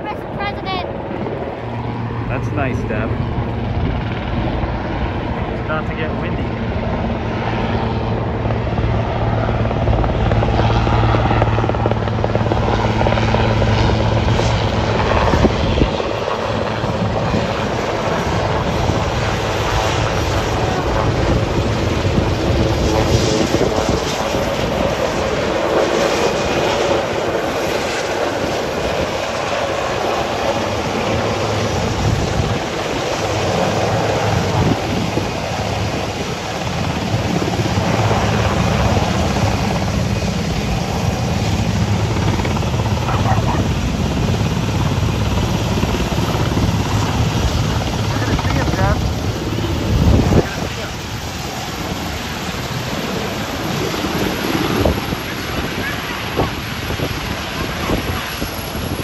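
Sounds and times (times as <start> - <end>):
helicopter rotor and turbine noise: 0.0 - 59.0.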